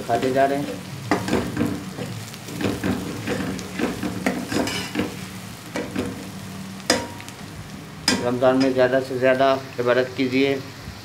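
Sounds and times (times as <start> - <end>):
onions sizzling in oil: 0.0 - 11.0
metal spatula scraping pot: 1.2 - 5.2.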